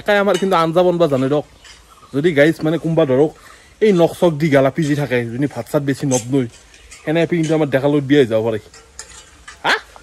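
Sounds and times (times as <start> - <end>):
man speaking: 2.1 - 8.7.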